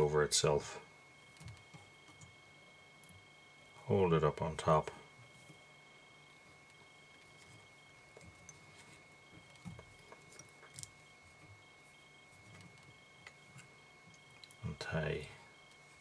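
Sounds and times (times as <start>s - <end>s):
faint small clicks: 14.1s - 14.6s.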